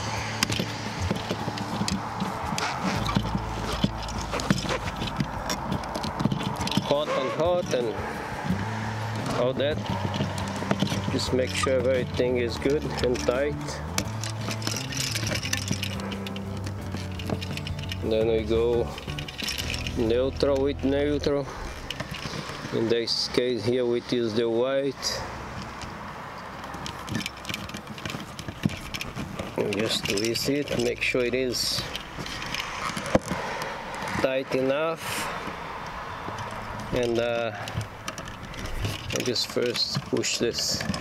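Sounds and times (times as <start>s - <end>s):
wire handling clicks: 0.0s - 7.8s, 8.5s - 20.7s
steady background noise: 0.0s - 41.0s
wire nut crackling clicks: 9.2s - 18.1s.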